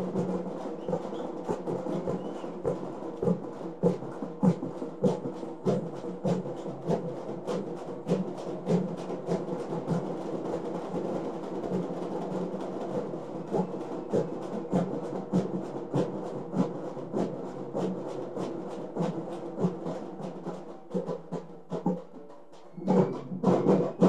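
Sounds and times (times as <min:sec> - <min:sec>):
frame drums beaten with sticks: 0:00.0 - 0:24.0.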